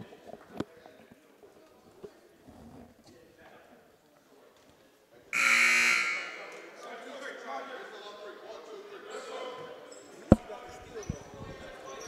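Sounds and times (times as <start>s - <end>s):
scoreboard horn buzzing: 5.4s - 6.5s.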